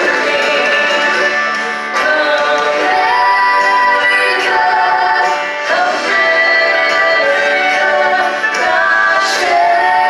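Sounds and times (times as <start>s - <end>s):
banjo-led country band: 0.0s - 10.0s
singers holding long notes: 0.0s - 10.0s.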